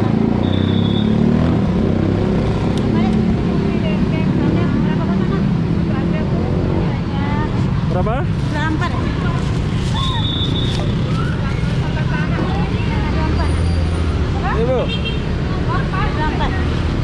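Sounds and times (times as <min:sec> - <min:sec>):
road traffic rumble: 0:00.0 - 0:17.0
people's voices: 0:02.7 - 0:17.0.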